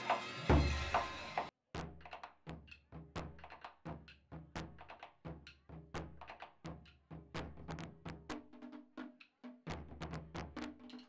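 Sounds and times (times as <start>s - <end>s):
drums struck with wooden sticks: 0.0s - 11.0s.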